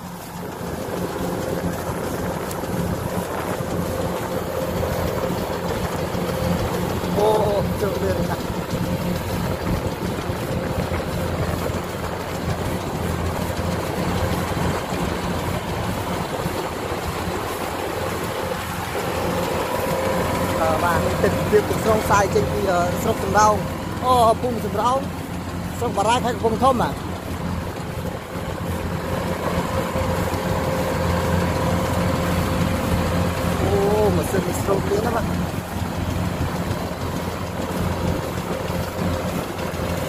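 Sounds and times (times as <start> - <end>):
diesel engine drone: 0.0 - 40.0
mechanical whine: 0.0 - 40.0.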